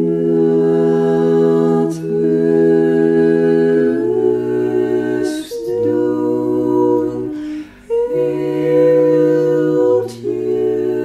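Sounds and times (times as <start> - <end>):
a cappella harmony singing: 0.0 - 11.0.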